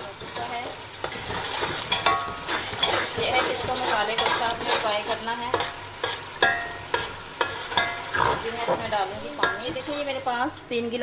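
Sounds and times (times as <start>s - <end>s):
food sizzling in a pot: 0.0s - 11.0s
metal ladle scraping a pot: 1.0s - 10.0s.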